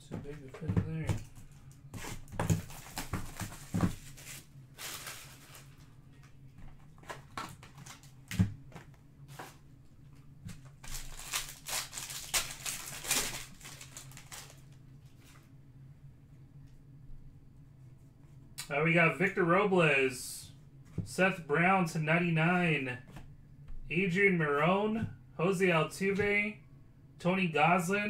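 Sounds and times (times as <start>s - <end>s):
foil wrapper crinkling and tearing: 2.1s - 5.8s, 10.8s - 14.8s.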